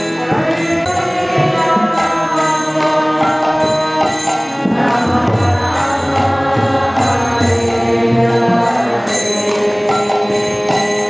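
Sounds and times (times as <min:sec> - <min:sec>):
hand cymbals striking a beat: 0:00.0 - 0:11.0
mantra chanting: 0:00.0 - 0:11.0
sustained instrument tones: 0:00.0 - 0:11.0.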